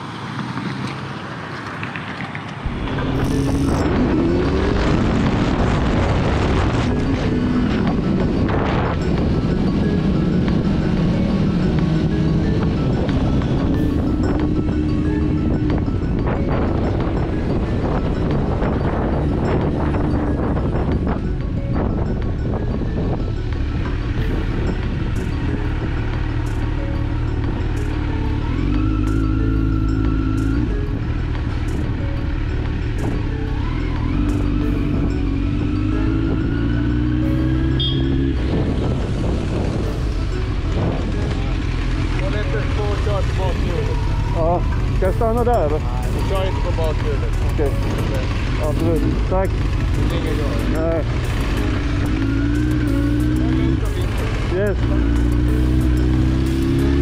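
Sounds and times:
motorcycle engine: 0.0s - 57.0s
wind noise: 2.6s - 27.7s, 37.4s - 41.5s
music: 2.6s - 57.0s.

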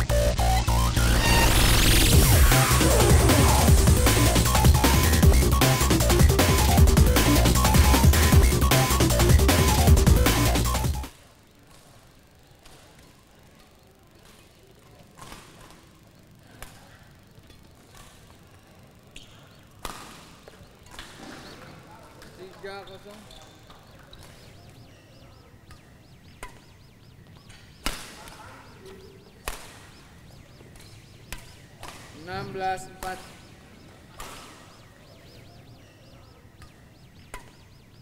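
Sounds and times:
racket striking shuttlecock: 19.2s - 21.5s, 25.7s - 26.7s, 27.4s - 28.4s, 29.3s - 32.3s, 34.1s - 34.9s, 36.6s - 37.7s.

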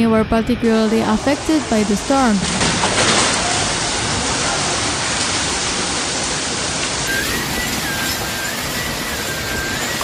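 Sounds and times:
heavy rain: 0.8s - 10.0s.

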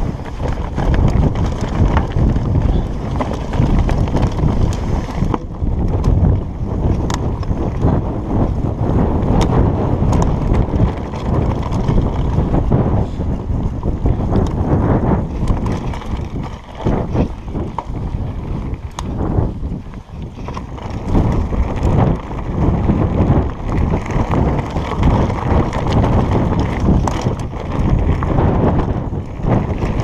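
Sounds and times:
bike clicks and rattles over stones: 0.0s - 30.0s
wind buffeting microphone: 0.0s - 30.0s.

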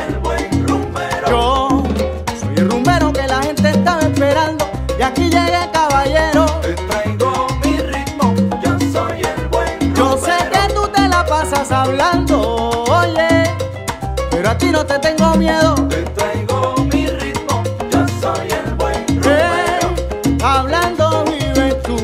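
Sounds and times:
instrumental salsa music: 0.0s - 22.0s.

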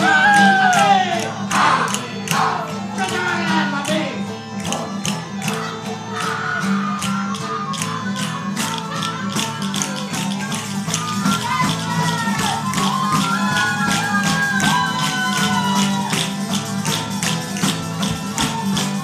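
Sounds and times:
acoustic guitar: 0.0s - 19.0s.

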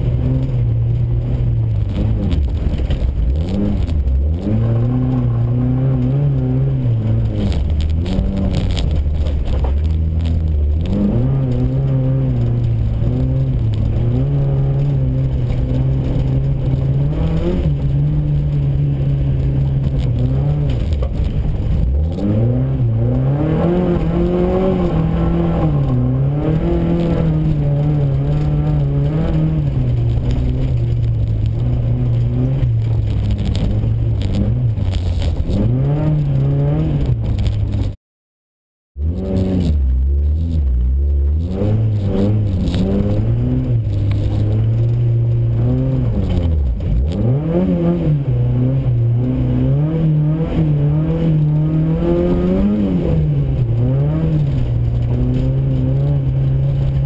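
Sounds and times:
rally car engine revving: 0.0s - 38.0s, 39.0s - 57.0s.

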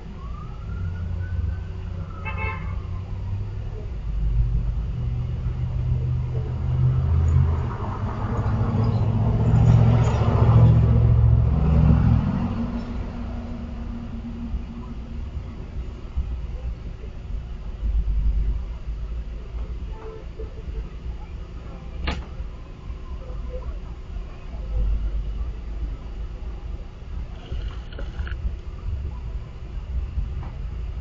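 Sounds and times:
steady low rumble: 3.1s - 31.0s
vehicle driving past: 4.2s - 15.7s.

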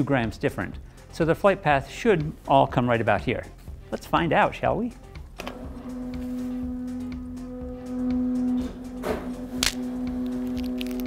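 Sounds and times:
stepper motor whining: 5.4s - 11.0s.

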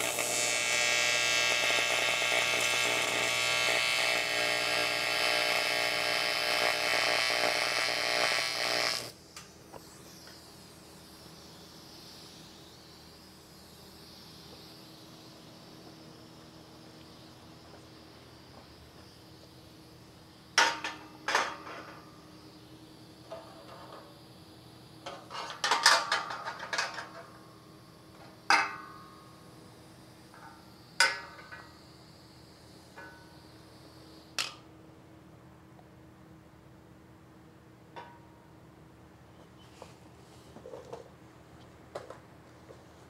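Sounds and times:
low shop hum: 0.0s - 43.0s.

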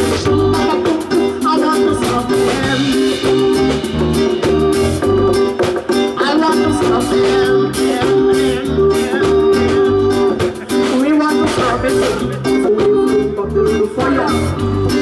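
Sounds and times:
drum kit: 0.0s - 15.0s
electric bass: 0.0s - 15.0s
reggae band playing: 0.0s - 15.0s
woman singing into a microphone: 0.0s - 15.0s.

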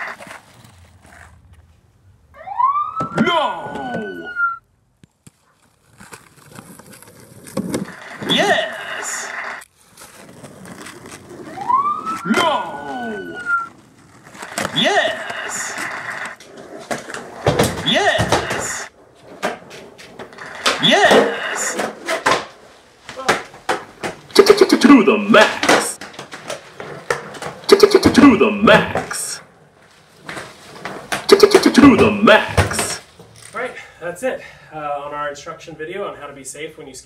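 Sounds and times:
skateboard wheels rolling on pavement: 0.0s - 33.8s
high siren-like wail: 2.3s - 4.6s, 11.4s - 13.7s
person shouting: 3.2s - 4.4s, 8.2s - 8.8s, 12.2s - 13.6s, 14.8s - 15.7s, 17.8s - 18.9s, 20.7s - 21.8s, 24.4s - 25.9s, 27.7s - 29.4s, 31.3s - 33.0s
skateboard clacks: 6.0s - 9.6s, 10.2s - 29.3s, 30.2s - 33.1s.

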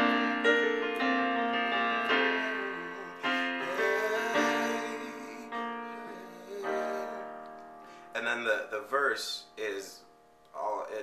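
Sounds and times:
digital piano chord: 0.0s - 10.4s
person speaking: 1.7s - 7.4s, 8.1s - 11.0s.

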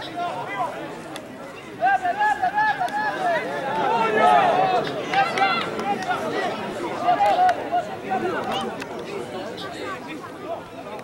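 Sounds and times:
voices shouting: 1.4s - 10.7s.

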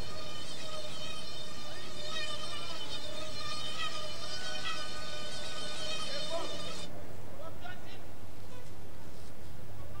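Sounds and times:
mosquito wings whining: 0.0s - 6.9s.

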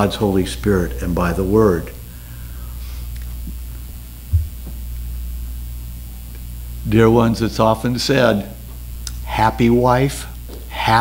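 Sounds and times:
low mains hum: 0.0s - 11.0s
brief low thump: 4.3s - 4.8s.

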